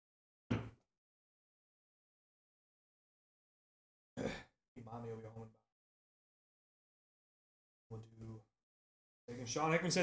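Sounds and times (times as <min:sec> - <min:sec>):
man sighing or murmuring: 0:04.2 - 0:04.5.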